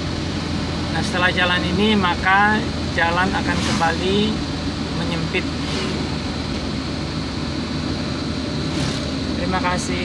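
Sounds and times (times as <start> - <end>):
car engine and tyre noise: 0.0 - 10.0.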